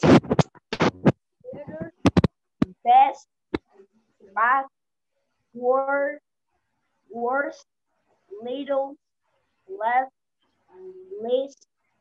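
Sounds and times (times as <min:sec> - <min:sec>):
crackling bursts: 0:00.0 - 0:02.8
person reading over a call: 0:00.0 - 0:06.3, 0:06.9 - 0:11.7.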